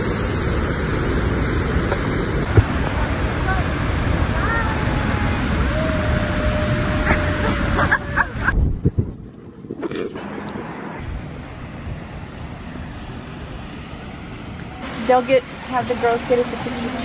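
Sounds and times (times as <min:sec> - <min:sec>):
waterfall roaring: 0:00.0 - 0:08.6, 0:09.8 - 0:17.0
outdoor background noise: 0:00.0 - 0:17.0
wind on microphone: 0:00.0 - 0:17.0
women whooping and cheering: 0:04.4 - 0:08.6.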